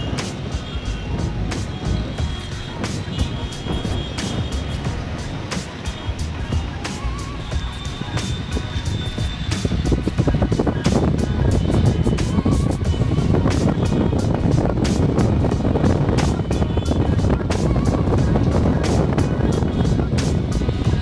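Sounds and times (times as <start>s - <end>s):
music with heavy bass: 0.0s - 21.0s.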